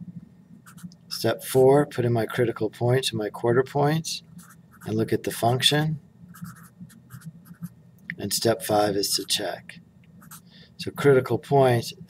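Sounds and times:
marker writing on paper: 6.4s - 7.7s, 10.2s - 10.5s.

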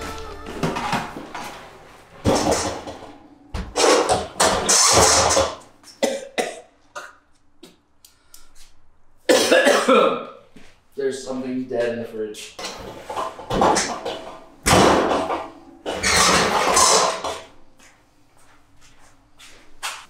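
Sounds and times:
man coughing and gagging: 5.9s - 7.3s, 9.3s - 10.4s.

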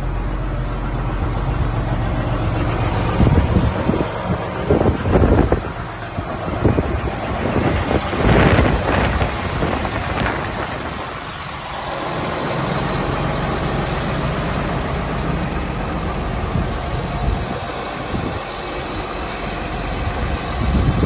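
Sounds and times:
tractor diesel engine idling: 0.0s - 21.0s
wind buffeting microphone: 0.0s - 21.0s.

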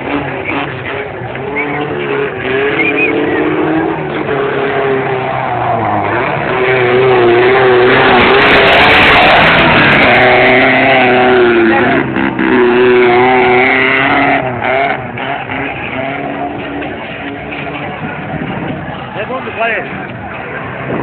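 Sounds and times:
off-road vehicle engine revving: 0.0s - 21.0s.

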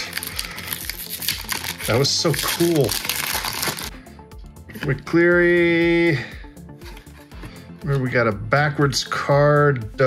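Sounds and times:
cardboard cards rustling: 0.0s - 3.9s
foil wrapper crinkling: 0.0s - 3.9s.

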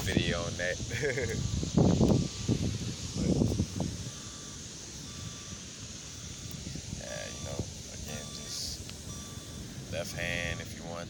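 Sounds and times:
even hiss: 0.0s - 11.0s.

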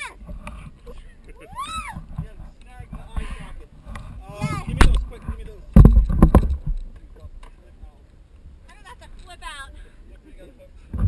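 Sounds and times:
loud knocks and thumps: 2.0s - 6.8s.

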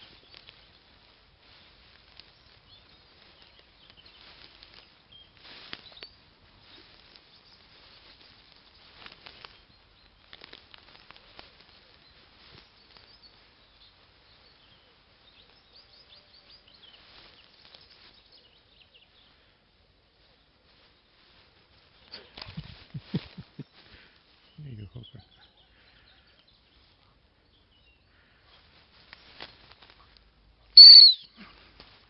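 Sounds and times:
rustling through long grass: 0.0s - 32.0s.

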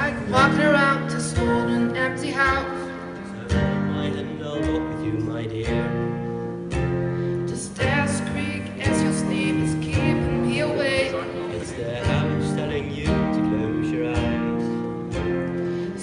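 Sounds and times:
woman singing: 0.0s - 3.0s, 7.5s - 11.9s
acoustic guitars: 0.0s - 16.0s
piano: 0.0s - 16.0s.

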